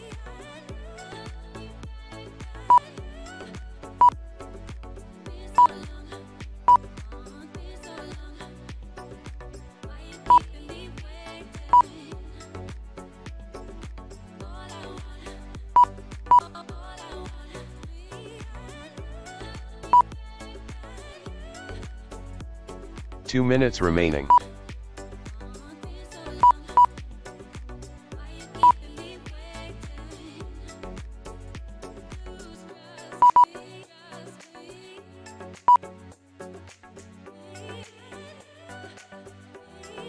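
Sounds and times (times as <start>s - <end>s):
background music with steady beat: 0.0s - 40.0s
short loud electronic beeps: 23.3s - 24.4s.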